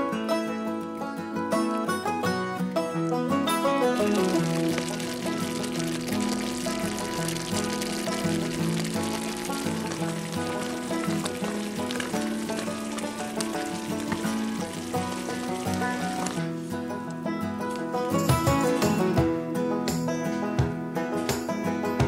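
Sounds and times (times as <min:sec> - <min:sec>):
instrumental music: 0:00.0 - 0:22.0
gravy sizzling in a skillet: 0:03.8 - 0:17.0.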